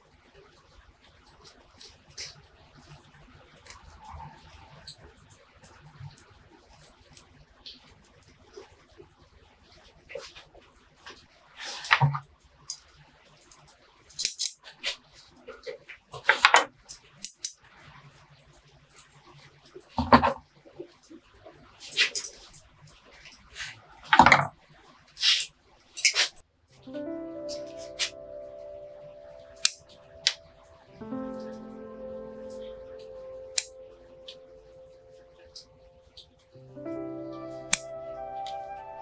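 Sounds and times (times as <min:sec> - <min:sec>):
background music sustained notes: 0:26.8 - 0:39.0.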